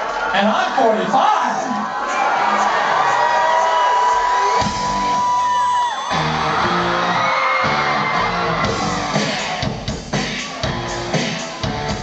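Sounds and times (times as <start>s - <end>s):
electro-punk band playing live: 4.6s - 5.2s, 6.1s - 12.0s.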